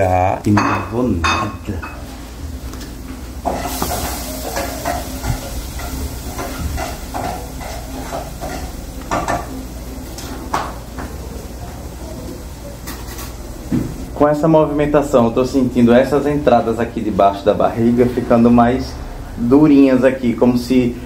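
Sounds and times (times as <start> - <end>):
pots and utensils clinking: 0.5 - 11.2, 12.8 - 14.0
shrimp sizzling in a frying pan: 3.4 - 14.1.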